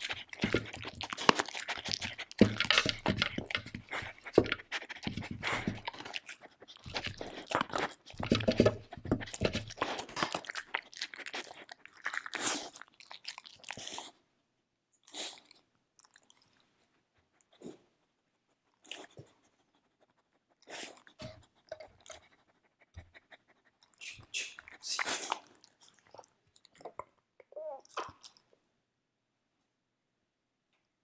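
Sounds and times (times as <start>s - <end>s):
dog crunching dry kibble: 0.0s - 14.1s
dog chewing and mouth sounds: 0.0s - 14.2s, 15.0s - 28.6s.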